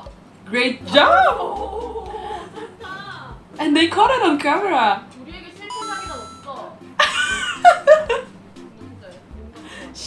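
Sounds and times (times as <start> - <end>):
light background music: 0.0 - 10.0
women exclaiming loudly: 0.9 - 2.5
bright electronic chime: 5.7 - 6.6.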